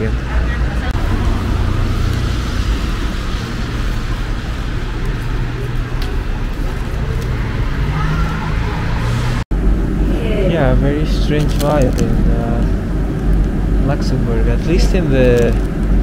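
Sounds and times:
low rumble of cars: 0.0 - 16.0.

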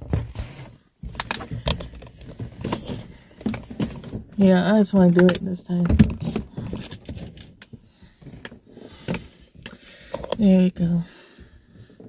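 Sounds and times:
phone handling rustling: 1.0 - 4.3.

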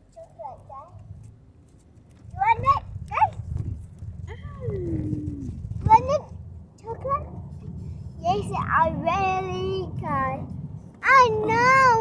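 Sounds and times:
low rumble inside car: 2.3 - 12.0.

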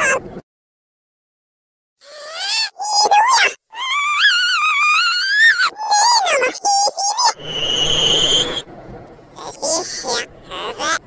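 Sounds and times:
pitch-shifted cartoon voice wailing: 2.0 - 8.6
hissy noise with thin whistle: 7.4 - 8.7.

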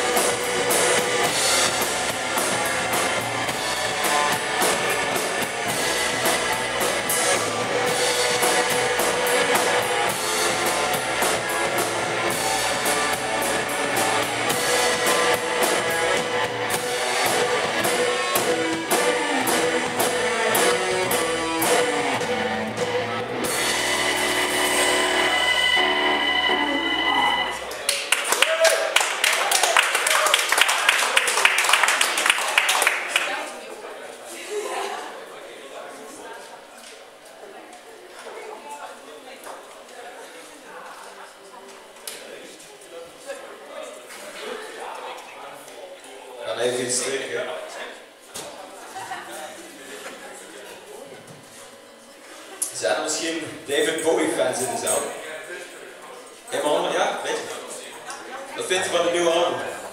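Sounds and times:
bass guitar: 0.0 - 27.9
electric guitar: 0.0 - 27.9
keyboard: 0.0 - 27.9
drum kit: 0.0 - 29.2.

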